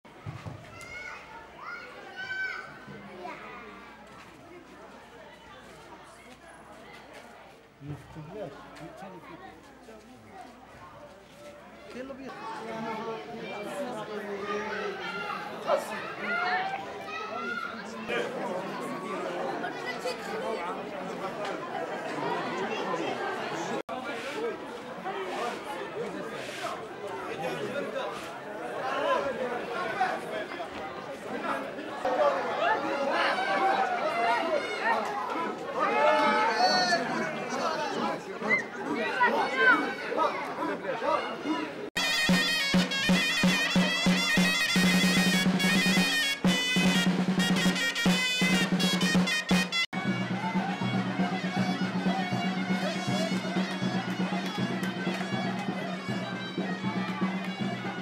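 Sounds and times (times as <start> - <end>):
crowd chatter: 0.1 - 58.0
children shouting: 0.6 - 3.9, 12.3 - 20.6, 32.0 - 47.0.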